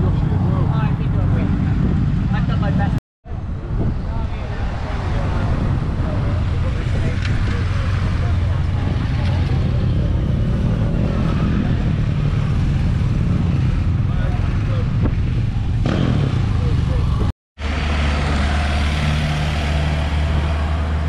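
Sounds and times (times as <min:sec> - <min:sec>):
people talking: 0:00.0 - 0:03.0, 0:03.6 - 0:10.3, 0:14.1 - 0:15.1, 0:16.4 - 0:17.3
vehicle engine humming: 0:00.0 - 0:21.0
motorcycles riding past: 0:04.7 - 0:21.0.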